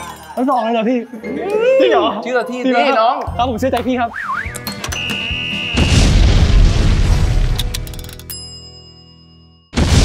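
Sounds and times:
background music: 0.0 - 10.0
high electronic beep: 4.2 - 6.2
explosion sound effect: 5.7 - 7.7, 9.8 - 10.0.

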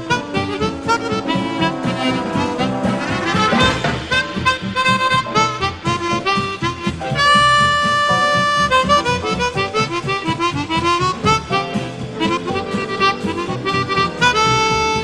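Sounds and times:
band rhythm accompaniment: 0.0 - 15.0
harmonica playing jazz melody: 0.0 - 15.0.

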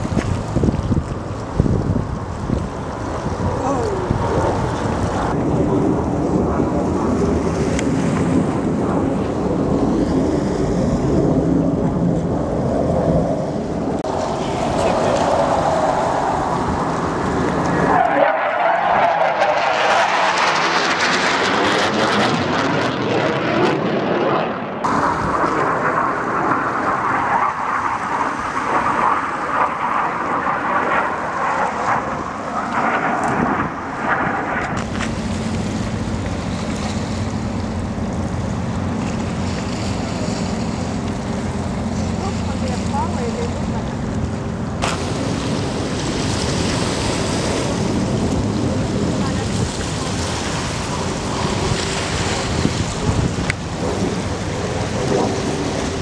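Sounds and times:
jet engines flying past: 0.0 - 56.0.

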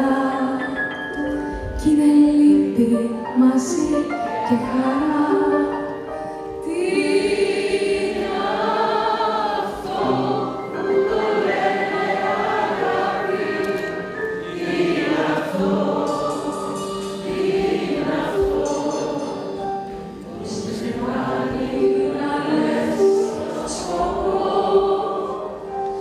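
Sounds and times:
audience singing along: 6.6 - 26.0.

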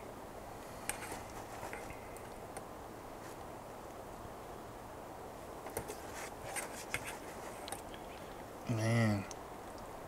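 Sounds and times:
soft background hiss: 0.0 - 10.0.

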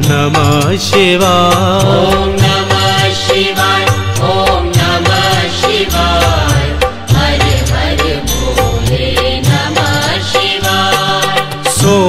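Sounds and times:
chanted mantra singing: 0.0 - 12.0
steady percussion beat: 0.0 - 12.0.

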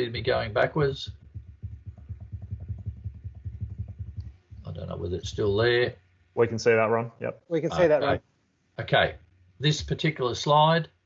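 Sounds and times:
soft computer taps: 0.3 - 5.6.

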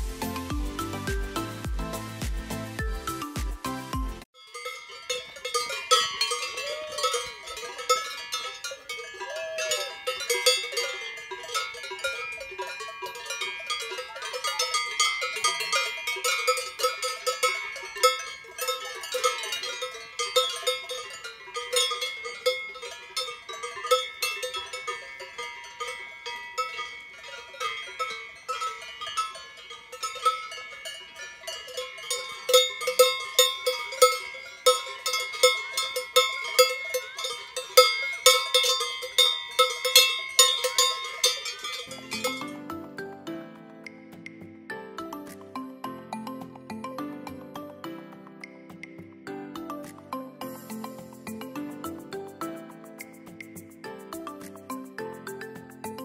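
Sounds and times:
cowbells clanking: 4.2 - 43.2, 43.8 - 56.0.

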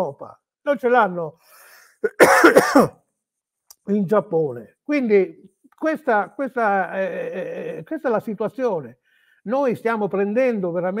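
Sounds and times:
man speaking: 0.0 - 1.4, 3.7 - 11.0
man clearing throat: 2.0 - 3.0.

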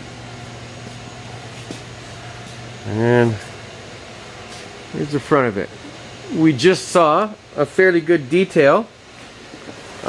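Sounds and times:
machinery humming: 0.0 - 10.0.

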